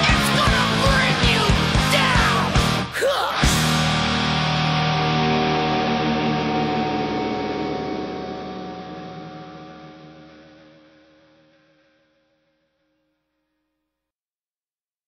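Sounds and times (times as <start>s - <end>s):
distorted electric guitars ringing: 0.0s - 12.9s.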